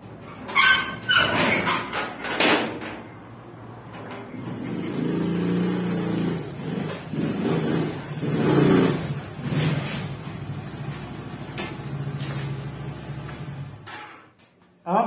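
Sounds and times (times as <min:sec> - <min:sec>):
motor scooter engine revving: 0:04.3 - 0:13.9.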